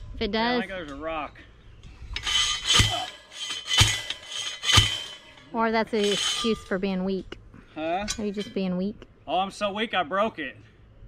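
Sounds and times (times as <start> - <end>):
post driver clanging on steel post: 2.2 - 6.8, 8.1 - 8.7.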